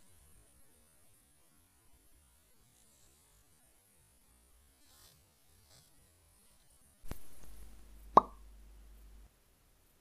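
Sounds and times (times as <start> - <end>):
faint low hum: 0.0 - 10.0
short bright pop: 8.2 - 8.4.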